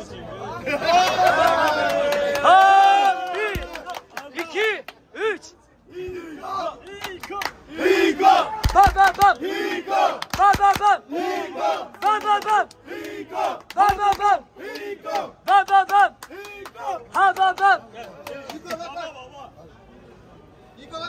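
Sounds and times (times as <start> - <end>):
group chanting shouted syllables: 7.7 - 17.8.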